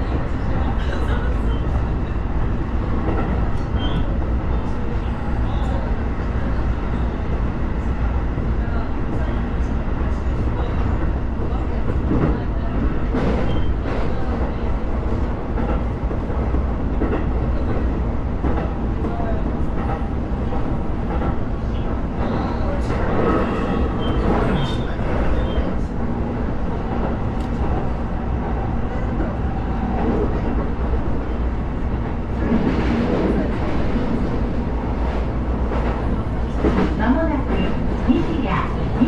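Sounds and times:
train wheels rumbling on rails: 0.0s - 39.0s.

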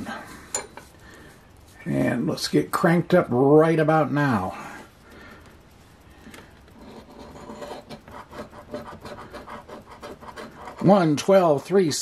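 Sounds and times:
coin scratching a lottery ticket: 6.8s - 12.0s.

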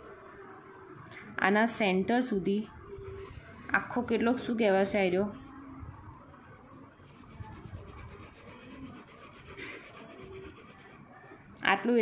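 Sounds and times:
ballpoint pen scratching on paper: 7.1s - 11.0s.

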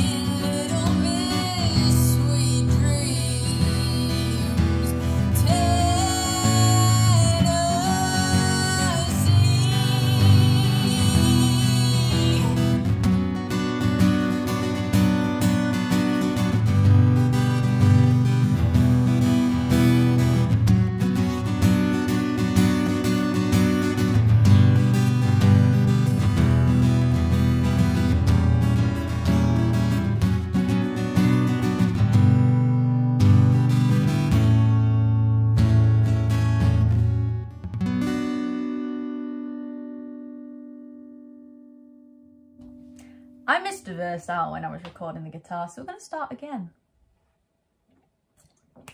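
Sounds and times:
strummed guitar chords: 0.0s - 43.4s.

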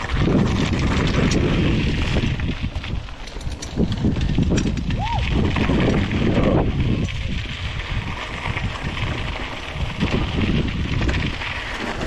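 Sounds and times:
bike rattling over bumps: 0.0s - 12.0s
tyres crunching over dirt: 0.0s - 12.0s
wind buffeting microphone: 0.0s - 12.0s.

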